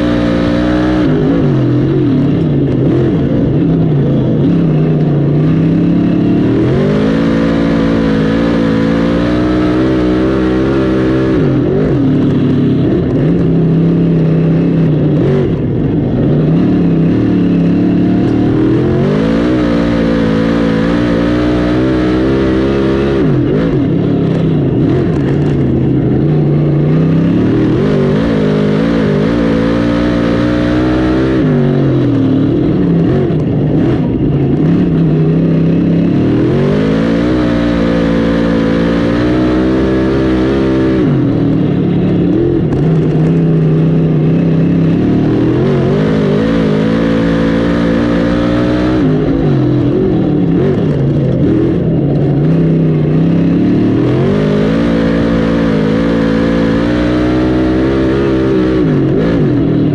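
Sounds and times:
race car engine revving: 0.0 - 59.9.

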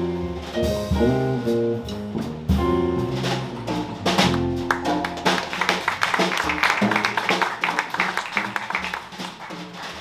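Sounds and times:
plucked electric bass: 0.0 - 7.1
drum kit cymbal and snare: 0.0 - 10.0.

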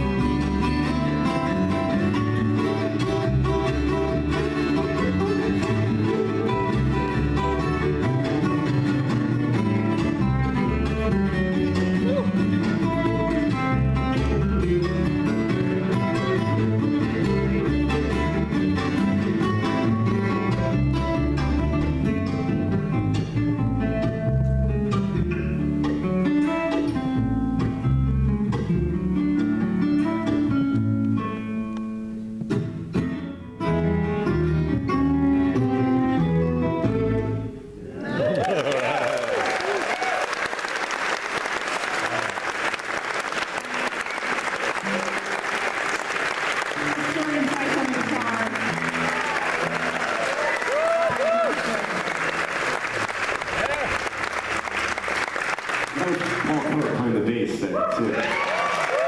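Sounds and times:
fiddle: 0.0 - 22.6
acoustic guitar picking: 0.0 - 37.8
double bass: 0.0 - 38.3, 42.0 - 57.0.

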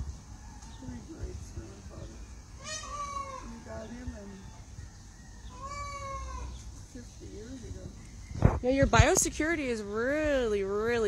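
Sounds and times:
low peacock calls: 0.0 - 8.6
peacock crying: 2.4 - 6.7.

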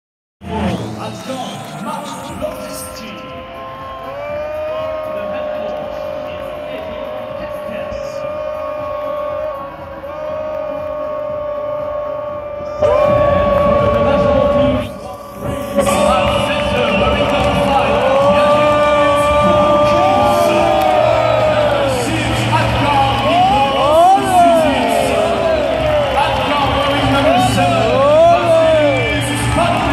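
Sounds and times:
arena music over loudspeakers: 0.4 - 29.9
crowd cheering and whooping: 3.2 - 29.9.

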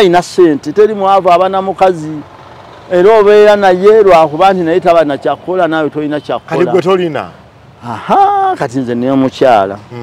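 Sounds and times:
man speaking: 2.9 - 10.0.

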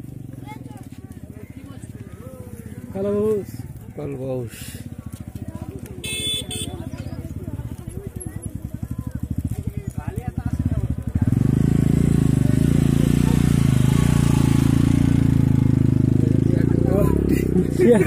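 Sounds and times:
voices: 0.0 - 18.0.

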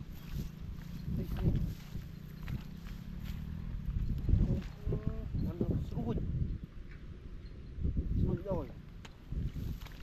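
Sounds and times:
bare footsteps rustling dry straw: 0.0 - 3.6.

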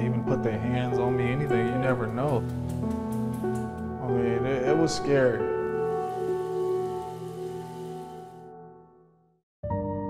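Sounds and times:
shower spraying on tiled floor: 5.6 - 8.4.

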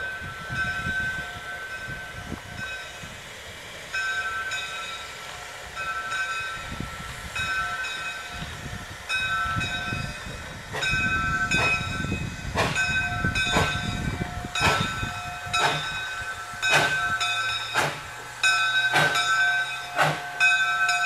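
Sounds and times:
steam locomotive chuffing: 0.0 - 21.0.

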